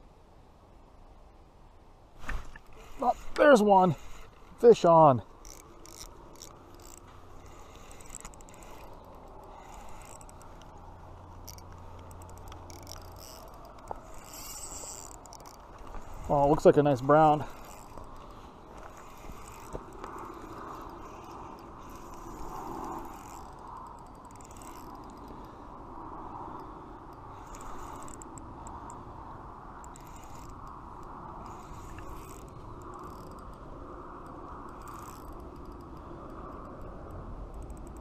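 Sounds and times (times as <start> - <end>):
fishing reel whirring: 2.6 - 38.0.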